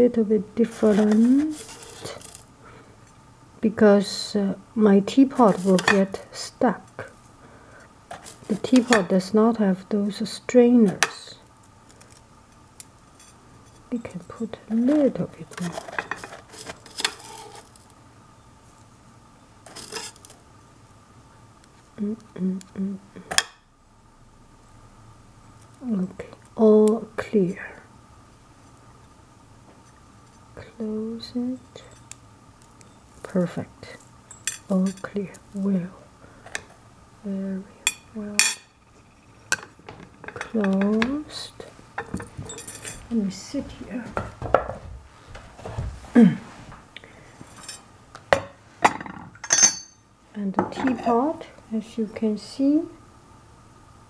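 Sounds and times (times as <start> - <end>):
metal clinks: 42.2 - 43.0, 49.4 - 50.0.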